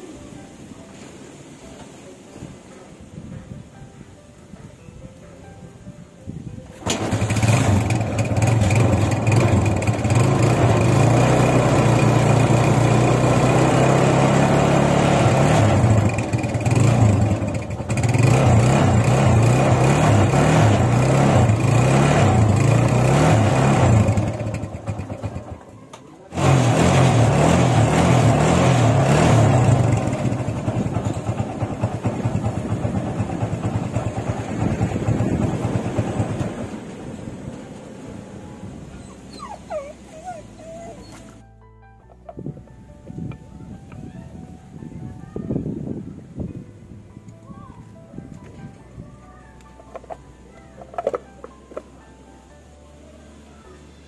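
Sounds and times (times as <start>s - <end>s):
motorcycle engine idling: 6.8s - 13.8s, 15.7s - 26.4s, 29.5s - 37.0s
dog whining: 38.9s - 41.4s.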